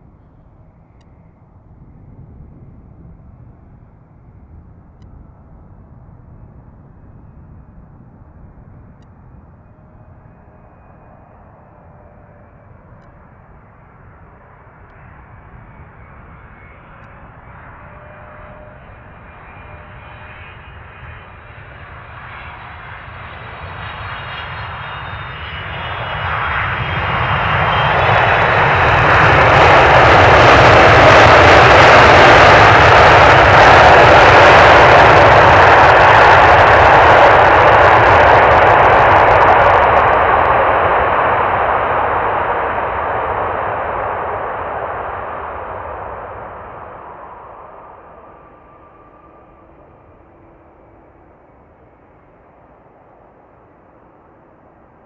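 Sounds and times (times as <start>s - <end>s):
jet engine reverse thrust roar: 0.0s - 55.0s
jet engine whine: 0.0s - 55.0s.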